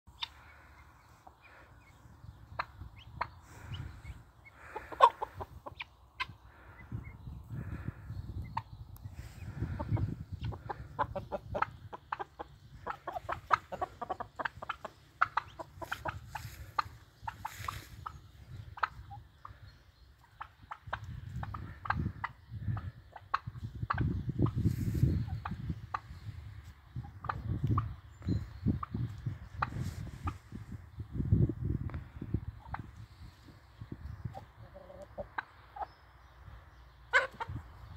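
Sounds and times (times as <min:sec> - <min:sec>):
chickens clucking: 0:00.1 - 0:37.9.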